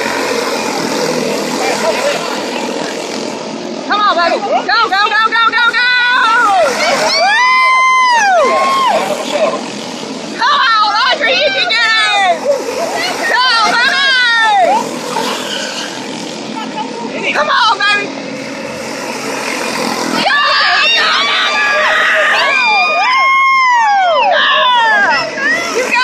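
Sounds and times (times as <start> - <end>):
people shouting and talking: 0.0 - 26.0
small race car engines: 0.0 - 26.0.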